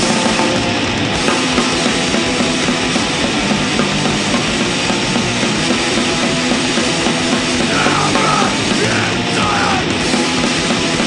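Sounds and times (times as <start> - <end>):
punk rock with distorted guitars: 0.0 - 11.0.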